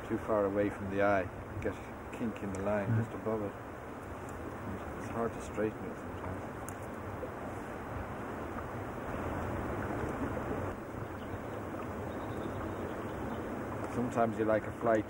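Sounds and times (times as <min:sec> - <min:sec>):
steady wind: 0:00.0 - 0:15.0
water noise: 0:00.0 - 0:15.0.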